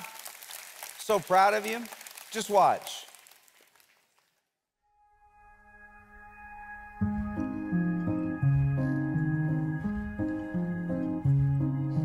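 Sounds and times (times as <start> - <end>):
music: 4.8 - 12.0.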